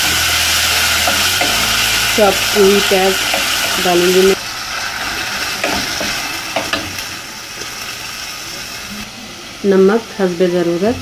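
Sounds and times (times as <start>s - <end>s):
onion sizzling in hot oil: 0.0s - 11.0s.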